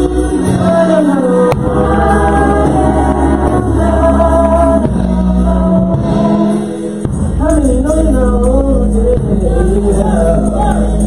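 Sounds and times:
low musical accompaniment: 0:00.0 - 0:11.0
singers performing worship song: 0:00.0 - 0:11.0.

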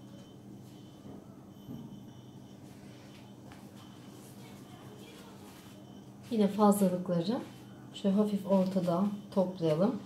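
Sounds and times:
papery rustle of dough: 0:02.7 - 0:07.8.

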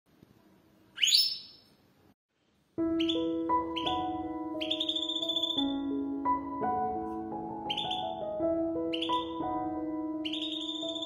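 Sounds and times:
keyboard background music: 0:02.8 - 0:11.0.

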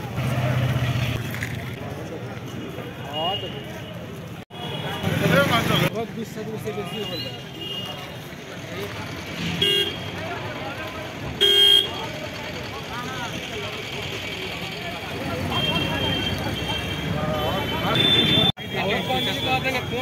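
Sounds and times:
people's voices: 0:00.0 - 0:20.0
street traffic: 0:00.0 - 0:20.0
vehicle horn toots: 0:09.6 - 0:10.1, 0:11.4 - 0:12.0.

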